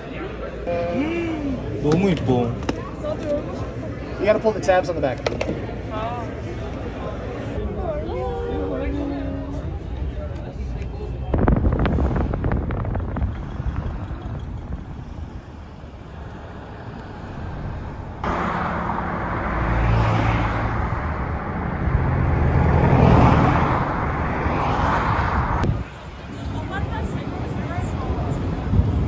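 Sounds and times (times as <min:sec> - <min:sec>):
freeway traffic road roar: 0:00.0 - 0:29.0.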